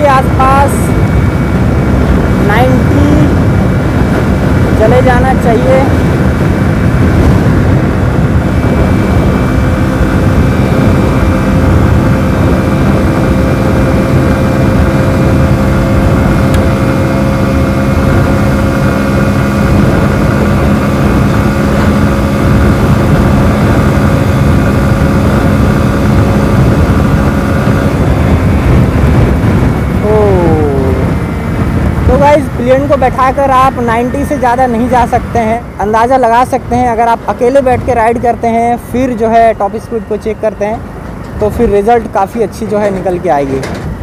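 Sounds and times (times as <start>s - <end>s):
motorcycle engine at high revs: 0.0s - 42.2s
wind rush on microphone: 0.0s - 44.0s.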